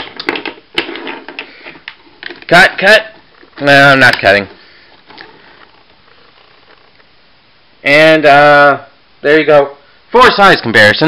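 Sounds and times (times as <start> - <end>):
low room hiss: 0.0 - 11.0.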